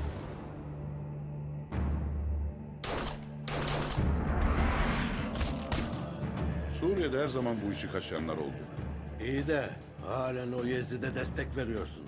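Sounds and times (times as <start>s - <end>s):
dramatic soundtrack music: 0.0s - 12.0s
pistol shots: 2.8s - 4.2s.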